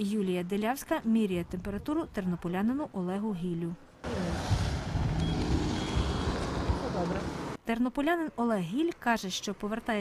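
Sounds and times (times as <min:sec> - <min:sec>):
wind buffeting microphone: 0:04.3 - 0:07.5.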